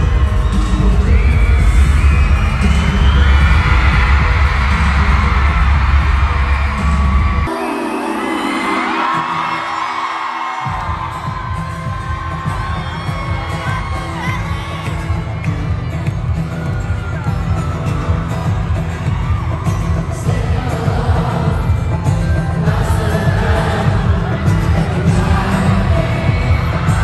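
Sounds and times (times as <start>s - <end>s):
heavy bass line: 0.0s - 7.5s
live pop concert music: 0.0s - 27.0s
person singing: 7.5s - 10.2s, 20.0s - 27.0s.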